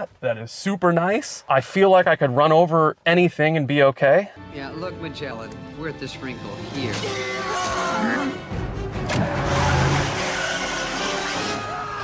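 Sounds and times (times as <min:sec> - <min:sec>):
car engine revving: 0:09.0 - 0:11.9.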